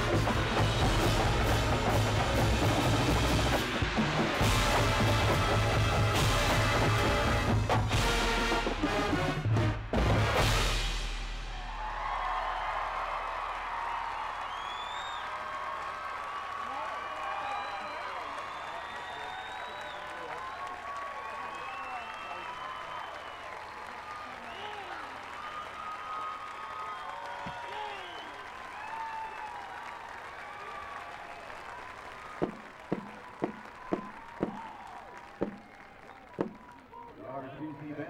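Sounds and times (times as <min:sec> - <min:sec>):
crowd applauding and cheering: 0:00.0 - 0:10.7, 0:11.4 - 0:38.0.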